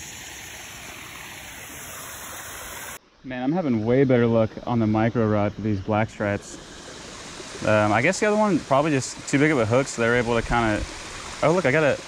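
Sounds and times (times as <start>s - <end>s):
creek water running: 0.0s - 12.0s.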